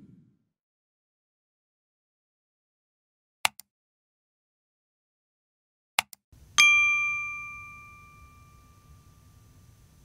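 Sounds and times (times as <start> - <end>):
bright bell ding: 6.6 - 9.7.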